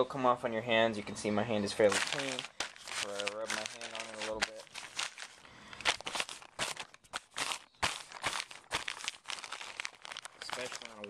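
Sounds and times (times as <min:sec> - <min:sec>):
hand rubbing crinkling bag: 0:01.7 - 0:11.0.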